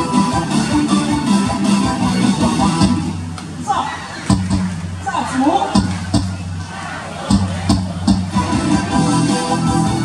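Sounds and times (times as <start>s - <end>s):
ballpark music: 0.0s - 10.0s
voices: 3.4s - 9.2s.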